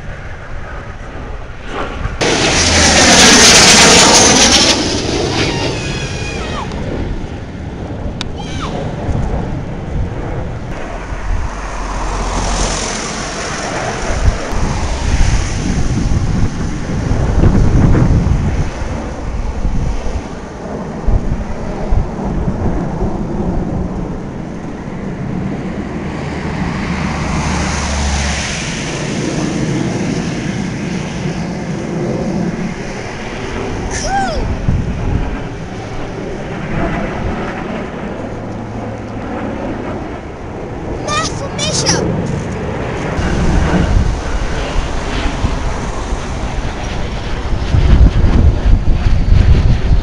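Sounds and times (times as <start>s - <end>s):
jet engines roaring overhead: 0.0s - 50.0s
wind buffeting microphone: 0.0s - 50.0s.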